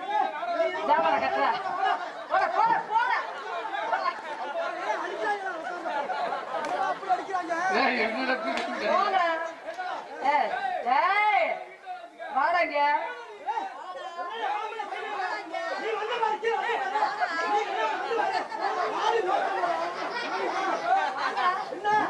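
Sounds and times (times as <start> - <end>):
actors talking: 0.0 - 22.0.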